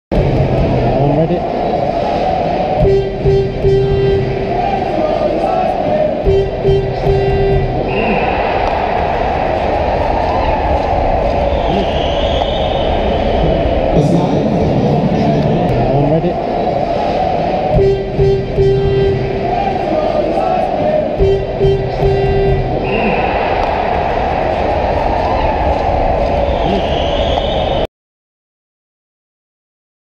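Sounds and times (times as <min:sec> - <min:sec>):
crowd din: 0:00.1 - 0:27.9
music over a pa system: 0:02.4 - 0:16.4, 0:17.1 - 0:26.7
repeated notes: 0:02.8 - 0:04.6, 0:06.2 - 0:07.9, 0:17.7 - 0:19.9, 0:21.1 - 0:22.8.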